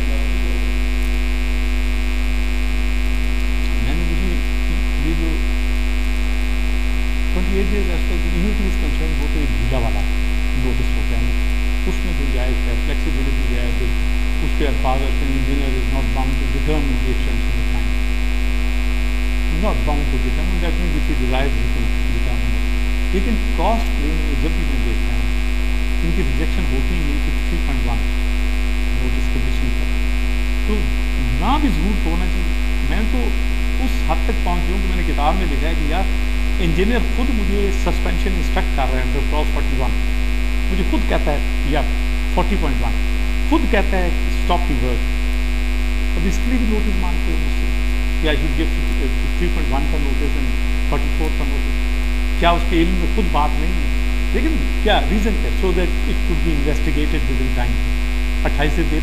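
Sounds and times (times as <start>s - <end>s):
faint muffled speech: 0.0s - 0.6s, 3.8s - 5.4s, 7.4s - 10.0s, 10.6s - 11.3s, 11.9s - 17.8s, 19.5s - 22.5s, 23.2s - 25.2s, 26.1s - 28.0s, 29.0s - 29.8s, 30.7s - 36.0s, 36.6s - 39.9s, 43.6s - 45.0s, 48.2s - 51.6s, 52.4s - 53.8s, 58.5s - 59.0s
man lecturing faintly: 0.0s - 0.7s, 3.6s - 5.4s, 7.4s - 11.3s, 11.9s - 17.9s, 19.5s - 22.6s, 23.2s - 25.3s, 26.0s - 28.0s, 28.9s - 29.8s, 30.7s - 39.9s, 40.7s - 45.0s, 46.2s - 47.6s, 48.2s - 51.6s, 52.4s - 57.8s, 58.5s - 59.0s
loud electrical mains hum: 0.0s - 59.0s.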